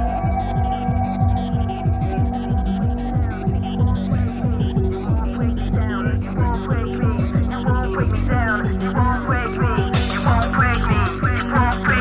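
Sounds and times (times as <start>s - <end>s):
fast kick drum: 0.0s - 12.0s.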